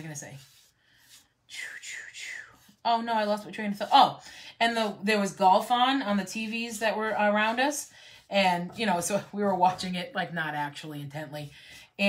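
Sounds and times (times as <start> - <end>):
woman speaking: 0.0 - 0.5, 1.5 - 12.0
woman whispering: 1.5 - 3.0.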